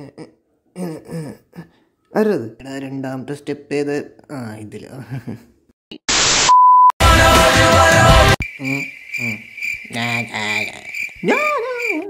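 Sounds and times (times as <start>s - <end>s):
crickets chirping: 8.4s - 12.0s.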